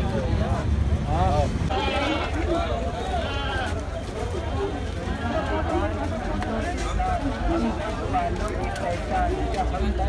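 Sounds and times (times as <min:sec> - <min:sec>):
people chattering: 0:00.0 - 0:10.0
goats bleating: 0:01.7 - 0:03.8.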